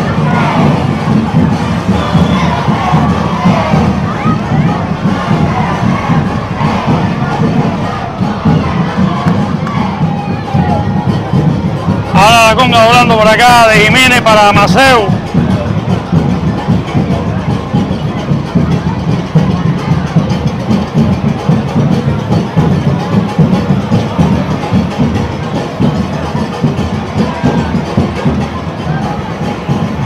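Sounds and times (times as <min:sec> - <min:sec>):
crowd voices: 0:00.0 - 0:30.0
drums and hand percussion: 0:00.0 - 0:30.0.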